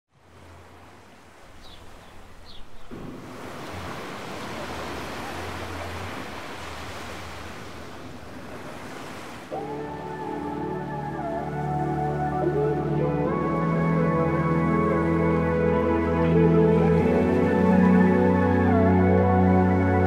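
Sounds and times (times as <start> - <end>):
surf washing against rocks: 0.2 - 12.7
soft ambient music: 9.5 - 20.0.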